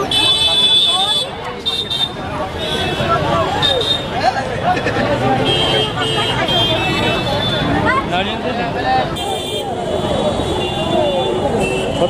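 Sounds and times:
road traffic rumble: 0.0 - 12.0
voices talking: 0.0 - 12.0.

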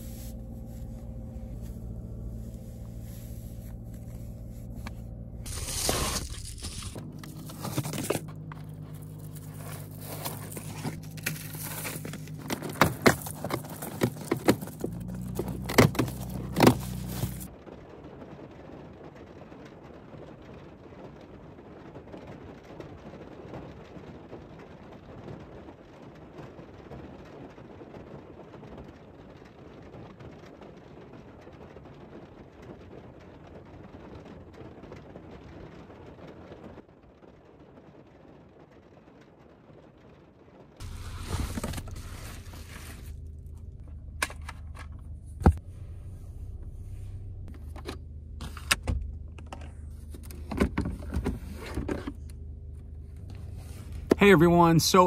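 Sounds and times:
car noise: 0.0 - 17.7, 40.8 - 55.0.

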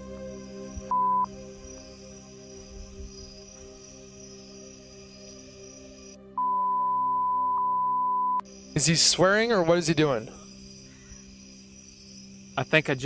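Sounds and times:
soft ambient music: 0.0 - 13.0
censor bleep: 0.9 - 1.3, 6.4 - 8.4.

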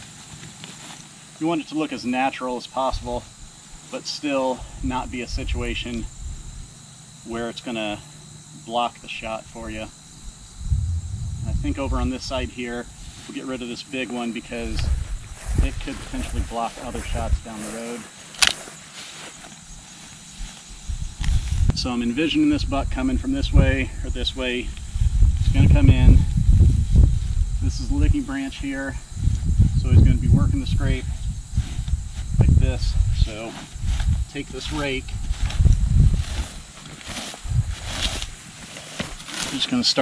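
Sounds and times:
low rumble: 10.4 - 13.1.

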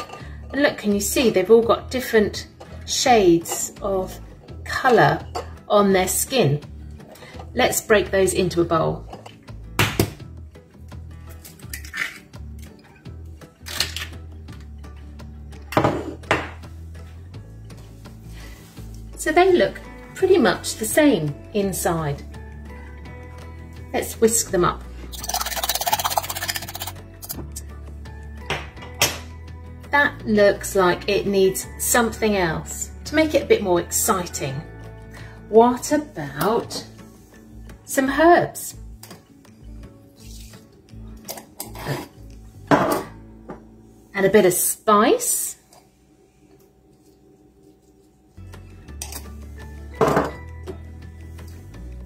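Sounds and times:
background music: 0.0 - 52.0
fork beating eggs in glass bowl: 25.1 - 27.4.

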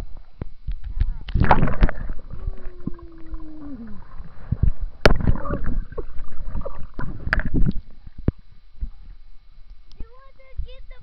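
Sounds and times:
water gurgling: 0.0 - 9.2
water splashing and sloshing: 0.0 - 9.3.

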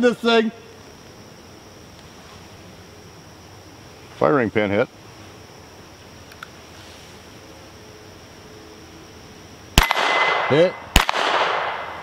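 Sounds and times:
faint click: 6.3 - 6.5
pistol shot: 9.8 - 12.0.

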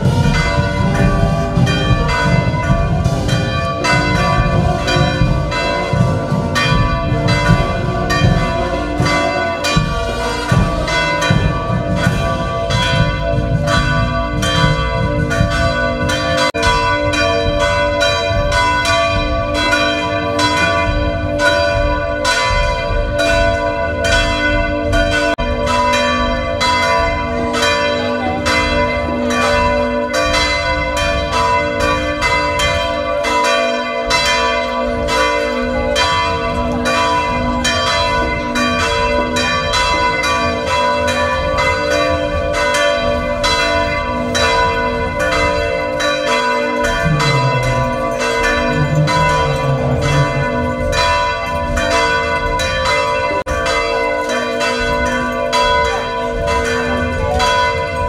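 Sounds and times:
church bells pealing: 0.0 - 58.0.

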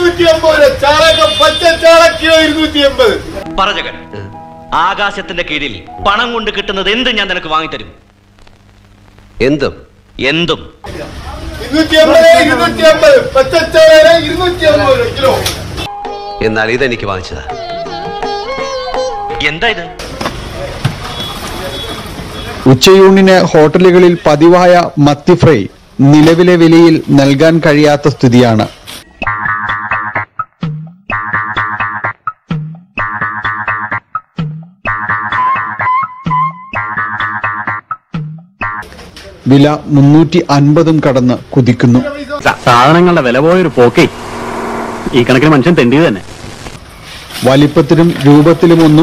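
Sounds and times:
man speaking: 9.4 - 15.5, 39.5 - 44.2, 45.1 - 46.3
steady even sound: 42.4 - 46.6.

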